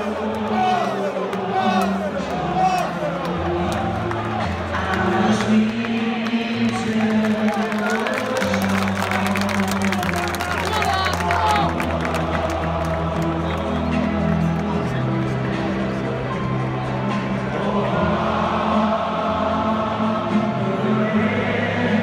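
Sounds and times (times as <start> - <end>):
crowd cheering: 0.0 - 21.0
music: 0.0 - 22.0
stadium crowd singing: 0.0 - 22.0.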